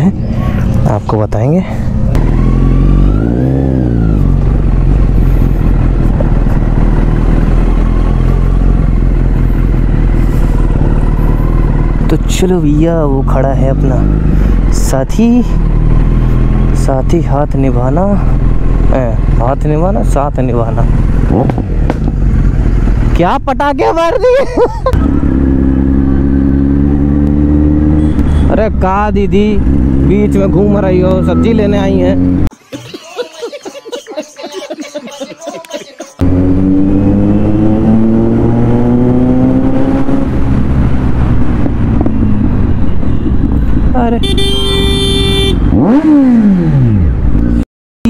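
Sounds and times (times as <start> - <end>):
wind and road noise: 0.0 - 47.6
motorcycle engine running: 1.9 - 12.4, 36.2 - 47.6.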